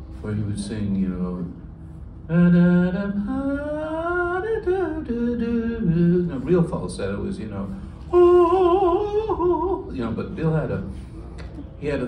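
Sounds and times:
man singing falsetto with vibrato: 8.1 - 10.0.

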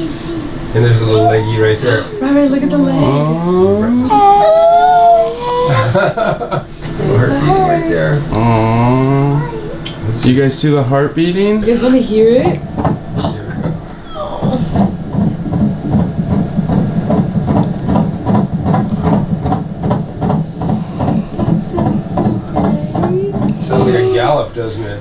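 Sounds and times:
doppler heartbeat whooshing pulses: 12.0 - 24.3.

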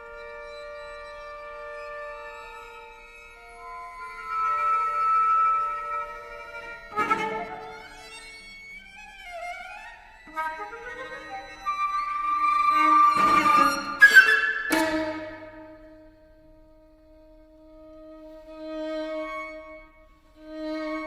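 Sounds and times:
flute: 0.0 - 8.2, 10.3 - 19.9
string trio playing: 0.0 - 21.0.

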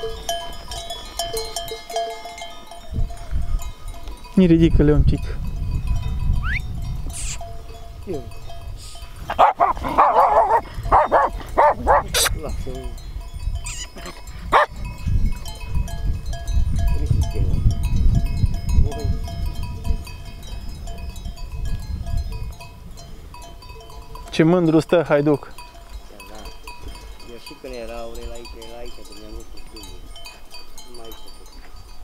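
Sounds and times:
wind rumbling on microphone: 0.0 - 24.7
dogs barking: 9.3 - 12.3, 14.0 - 14.8.

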